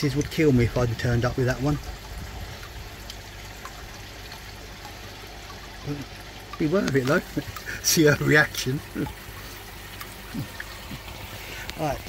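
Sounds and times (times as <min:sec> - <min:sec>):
running water trickling: 0:00.0 - 0:12.0.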